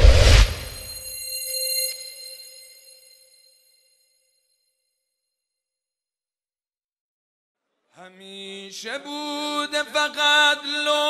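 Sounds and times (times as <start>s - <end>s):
bell-like metallic chord: 0.7s - 4.5s.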